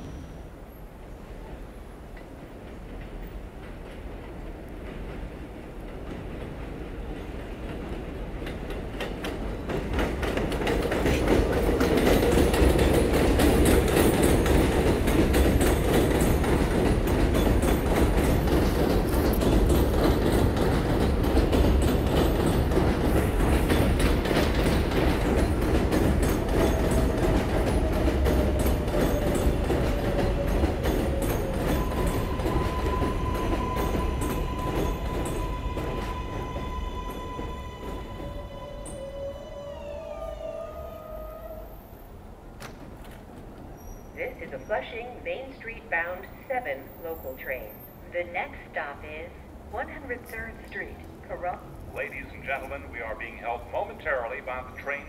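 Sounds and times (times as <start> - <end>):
train rumble and wheel clatter: 0.0 - 55.0
train braking whine: 25.3 - 42.2.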